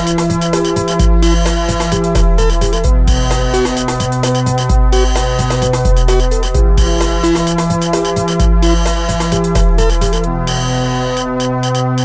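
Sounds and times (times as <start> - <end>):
electronic breakbeat music: 0.0 - 12.0.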